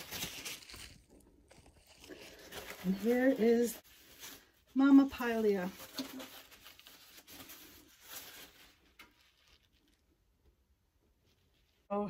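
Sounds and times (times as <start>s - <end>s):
paper towel rubbing plant pot: 0.0s - 10.0s.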